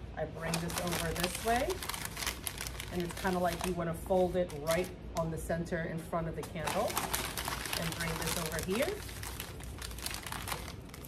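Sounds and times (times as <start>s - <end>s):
packing paper crinkling: 0.4s - 3.8s, 6.6s - 11.0s.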